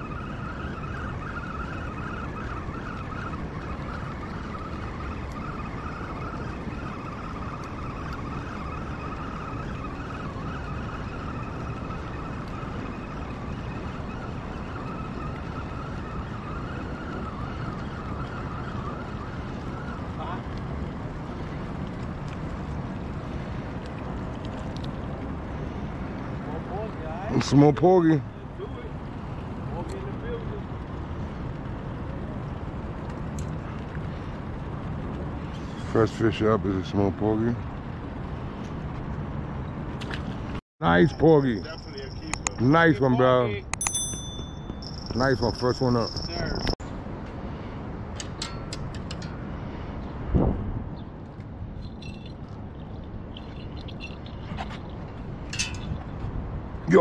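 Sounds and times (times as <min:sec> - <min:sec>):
outdoor background noise: 0:00.0 - 0:57.0.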